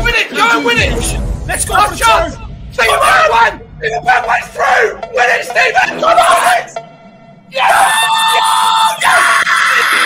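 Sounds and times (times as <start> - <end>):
men screaming and yelling: 1.6 - 10.0.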